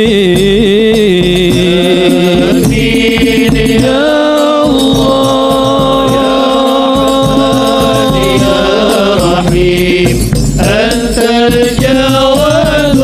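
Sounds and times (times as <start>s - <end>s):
frame drums: 0.0s - 13.0s
group singing in unison: 1.4s - 13.0s.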